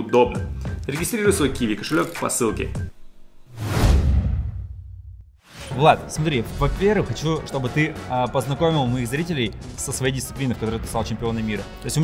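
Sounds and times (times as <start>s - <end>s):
deep boom: 3.6s - 5.4s.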